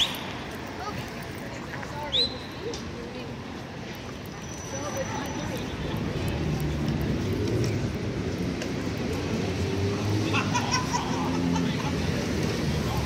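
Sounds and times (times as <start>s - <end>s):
passers-by voices: 0.0s - 13.0s
vehicle engine rumble: 0.0s - 13.0s.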